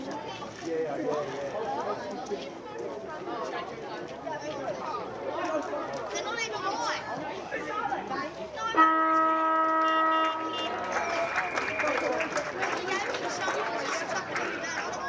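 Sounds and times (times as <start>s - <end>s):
spectators chattering: 0.0s - 15.0s
car horn: 8.7s - 11.5s.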